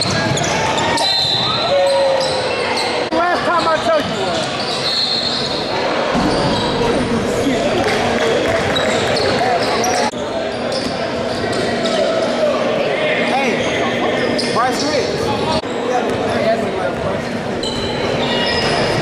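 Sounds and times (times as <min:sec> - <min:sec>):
sneakers squeaking on court: 0:00.0 - 0:01.6, 0:08.4 - 0:12.0, 0:17.6 - 0:19.0
voices chattering in echoing hall: 0:00.0 - 0:19.0.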